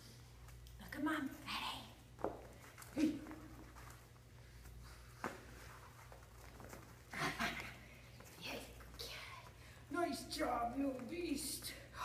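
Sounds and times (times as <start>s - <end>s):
steady low hum: 0.0s - 12.0s
dog scuffling on hard floor: 4.9s - 7.1s.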